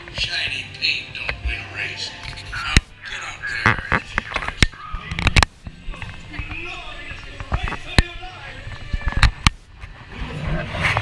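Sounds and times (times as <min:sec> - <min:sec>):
indistinct voices: 0:00.0 - 0:11.0.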